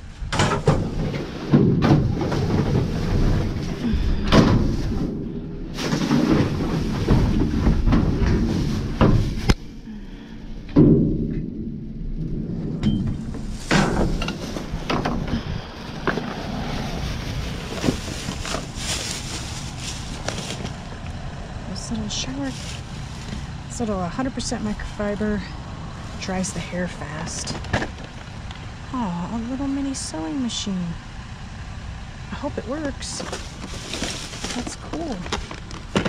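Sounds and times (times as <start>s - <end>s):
low rumble: 0.0s - 35.9s
plastic bags rustling: 0.7s - 9.8s, 13.1s - 25.2s, 33.0s - 36.0s
knocks against metal dumpster: 10.7s - 11.6s.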